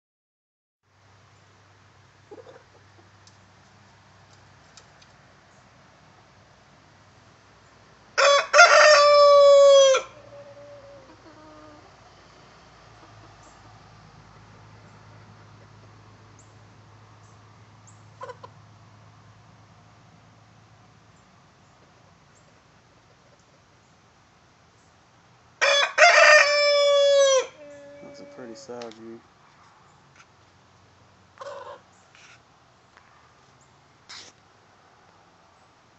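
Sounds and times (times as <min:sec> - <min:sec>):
rooster crowing: 0:08.2 - 0:11.8, 0:25.6 - 0:28.7.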